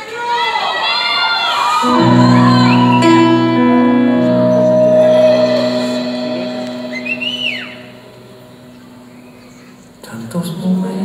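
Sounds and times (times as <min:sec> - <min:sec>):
band sustained chord: 0:01.9 - 0:09.7
audience member whistling: 0:02.0 - 0:08.2.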